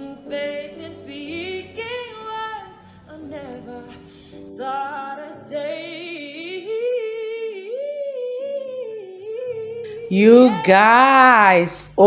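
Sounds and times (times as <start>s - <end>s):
woman singing long note: 8.2s - 11.7s.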